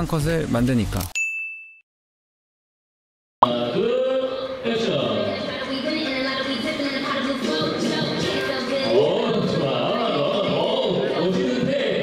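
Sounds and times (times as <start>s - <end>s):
bright electronic ding: 1.2s - 1.8s.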